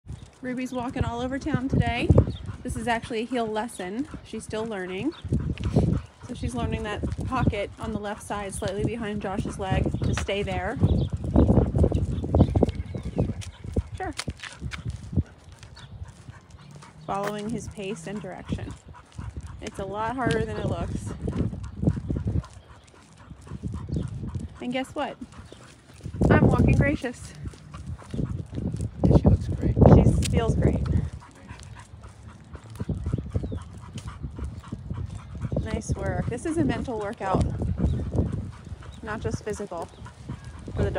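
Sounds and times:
footsteps on asphalt: 0:00.0 - 0:40.9
dog panting: 0:00.1 - 0:40.9.

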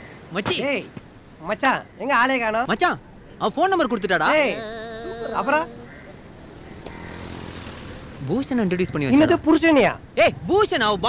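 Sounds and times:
street ambience: 0:00.0 - 0:11.0
vehicle motor rumbling: 0:04.4 - 0:09.5.

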